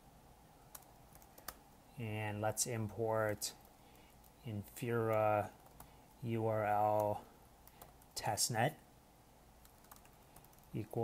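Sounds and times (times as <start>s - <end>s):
computer keyboard keystrokes: 0.7s - 1.6s, 9.6s - 11.0s.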